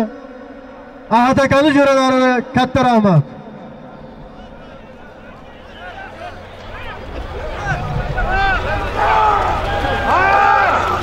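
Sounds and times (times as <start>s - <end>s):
long drawn-out shout: 4.3s - 11.0s
men shouting: 4.3s - 11.0s
low rumble: 6.5s - 10.1s.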